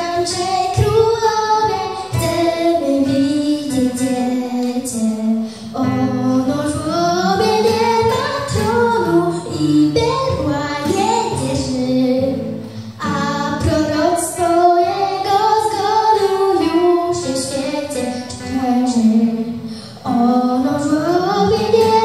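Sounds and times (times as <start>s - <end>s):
acoustic guitars: 0.0s - 22.0s
girl singing a carol: 0.0s - 22.0s.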